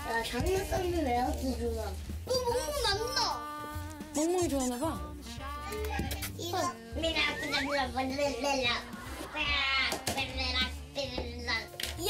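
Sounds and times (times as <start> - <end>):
child's high voice: 2.3 - 3.5.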